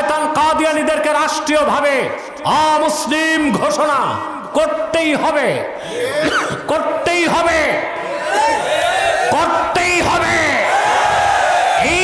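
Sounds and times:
preacher calling out: 0.0s - 11.0s, 11.7s - 12.0s.

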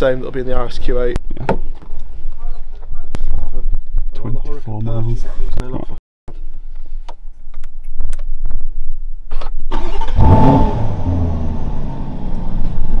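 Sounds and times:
car engine starting and idling: 9.3s - 13.0s.

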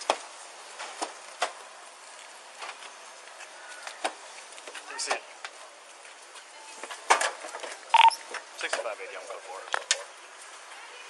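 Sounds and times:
short electronic beep: 8.0s - 8.2s.

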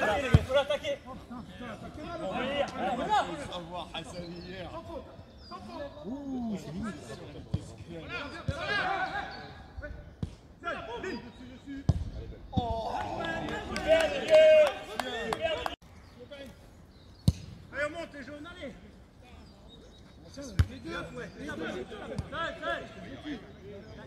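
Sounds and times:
players shouting: 0.0s - 4.0s, 8.0s - 9.8s, 12.5s - 15.8s.

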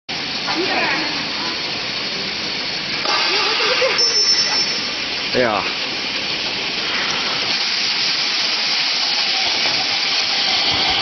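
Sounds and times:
fruit sorting machine running: 8.2s - 11.0s.

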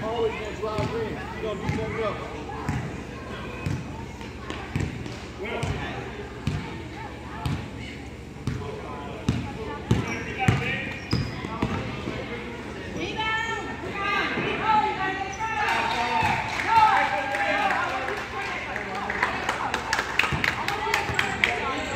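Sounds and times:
basketball bouncing on gym floor: 4.5s - 5.8s, 6.4s - 6.8s, 9.3s - 11.8s.

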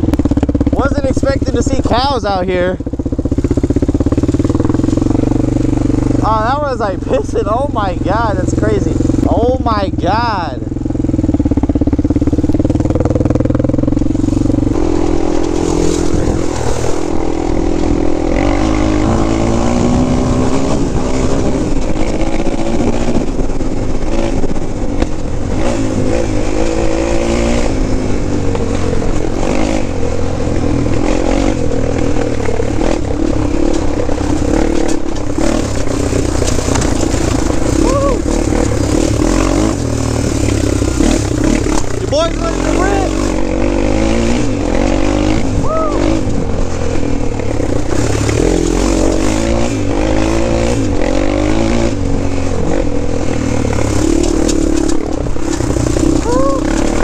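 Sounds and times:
quad engine revving: 0.0s - 57.0s.

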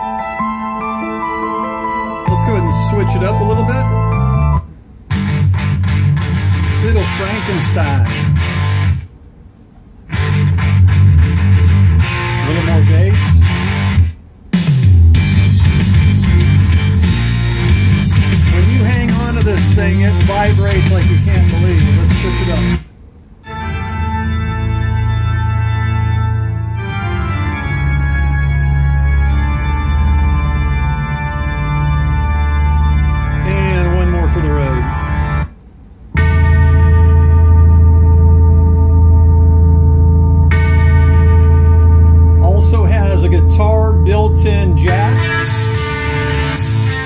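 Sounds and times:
music from boombox: 0.0s - 9.1s, 10.1s - 47.0s
rock music with electric guitar: 0.0s - 9.1s, 10.1s - 22.8s, 23.4s - 35.5s, 36.1s - 47.0s.

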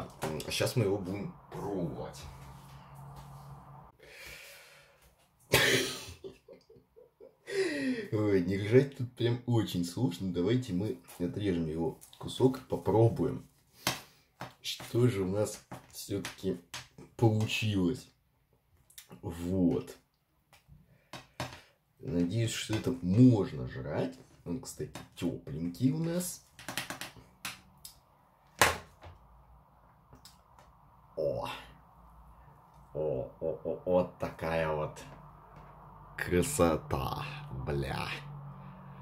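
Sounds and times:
faint breath: 2.4s - 5.2s, 7.4s - 8.1s
man coughing: 5.5s - 6.3s.

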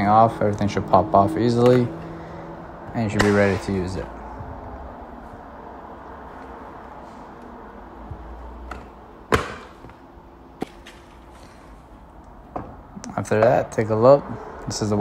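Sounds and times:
room noise hum: 0.0s - 15.0s.

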